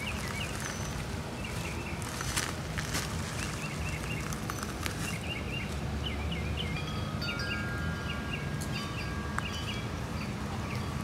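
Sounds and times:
low outdoor background: 0:00.0 - 0:11.0
small birds chirping: 0:00.0 - 0:11.0.

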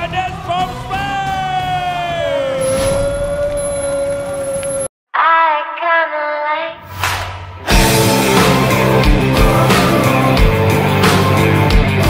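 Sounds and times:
background music: 0:00.0 - 0:03.4, 0:06.7 - 0:12.0.

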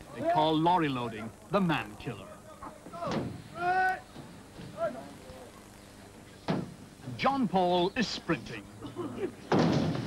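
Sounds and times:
person shouting: 0:03.0 - 0:04.0.

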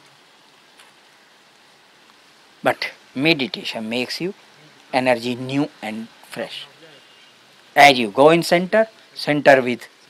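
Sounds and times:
faint background hiss: 0:00.0 - 0:10.0
man talking: 0:02.6 - 0:10.0.

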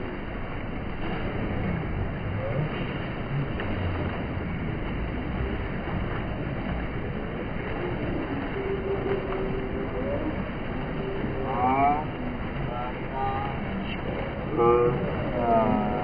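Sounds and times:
water rushing down a slide: 0:00.0 - 0:16.0
high voices calling out: 0:11.3 - 0:16.0.

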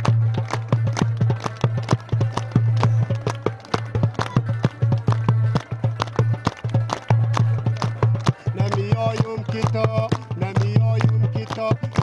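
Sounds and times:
crowd clapping along: 0:00.0 - 0:12.0
frame drum galloping rhythm: 0:00.0 - 0:12.0.

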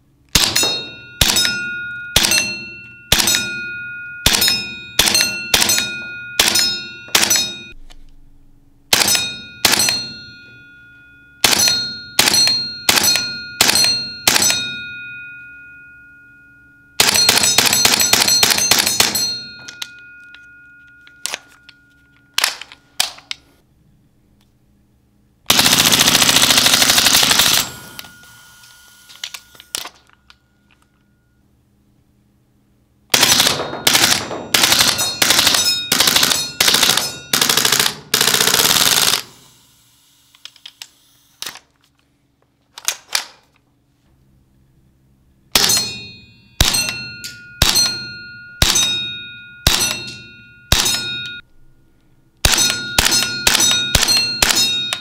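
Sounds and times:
airsoft gun firing: 0:00.3 - 0:01.6, 0:04.3 - 0:07.6, 0:08.9 - 0:10.1, 0:33.1 - 0:39.4, 0:52.4 - 0:54.8
metallic ring of steel targets: 0:00.3 - 0:23.0, 0:25.6 - 0:31.4, 0:33.1 - 0:39.8, 0:45.5 - 0:55.0.

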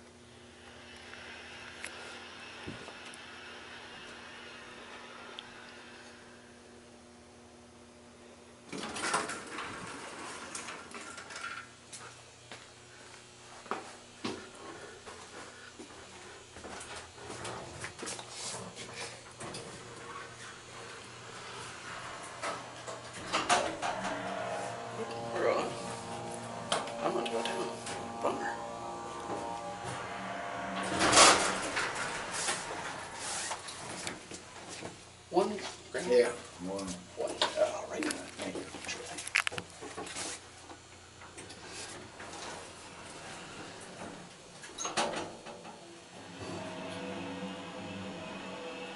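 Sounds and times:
elevator doors sliding: 0:08.8 - 0:11.5, 0:19.5 - 0:34.8, 0:42.3 - 0:48.9
low steady hum: 0:18.9 - 0:39.8
footsteps: 0:19.6 - 0:35.0.

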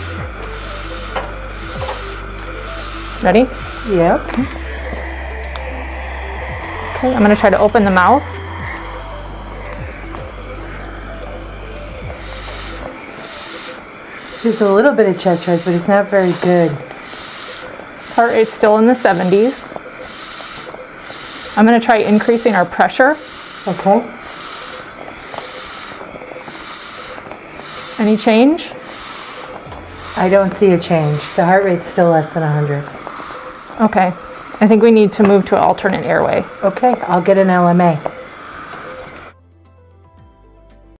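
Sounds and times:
short hisses of air: 0:00.0 - 0:11.1, 0:12.0 - 0:31.7, 0:32.9 - 0:39.4
faint background music: 0:00.0 - 0:40.9.

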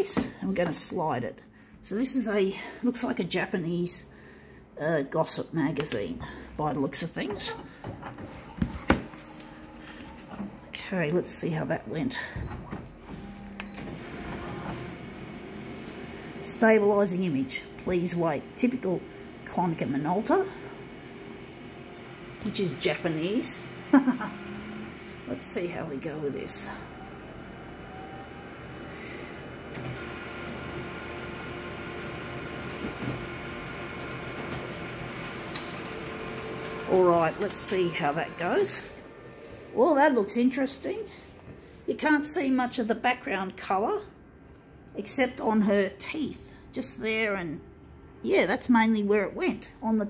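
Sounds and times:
copier whirring: 0:07.2 - 0:41.9.

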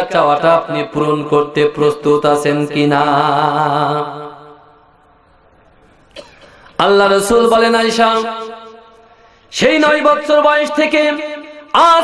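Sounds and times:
man chanting through a microphone: 0:00.0 - 0:04.6, 0:06.8 - 0:12.0.

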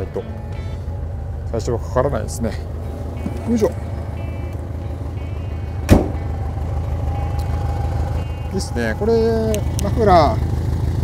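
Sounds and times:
car engine idling: 0:00.0 - 0:11.0
faint high beeping: 0:02.8 - 0:09.5
car door shutting: 0:05.9 - 0:06.3.

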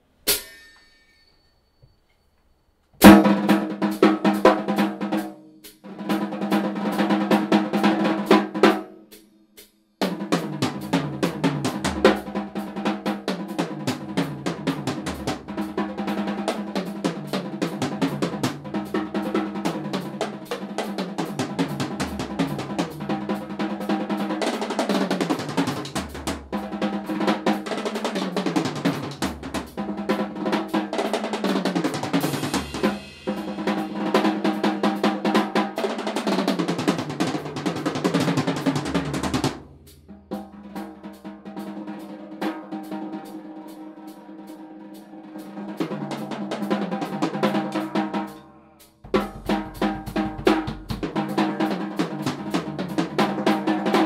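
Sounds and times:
cymbals ringing: 0:00.1 - 0:02.4, 0:32.4 - 0:34.2
drum kit playing: 0:00.2 - 0:00.7, 0:03.0 - 0:54.0.

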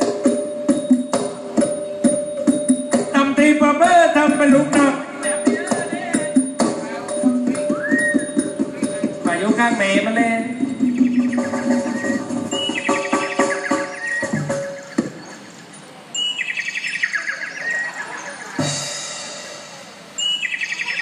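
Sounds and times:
bird-like chirping trill: 0:00.0 - 0:03.1, 0:04.2 - 0:21.0
held musical tones: 0:00.0 - 0:21.0.

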